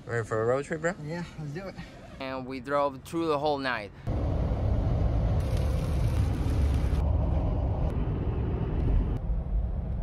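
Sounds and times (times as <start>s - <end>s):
car road and engine rumble: 3.9s - 10.0s.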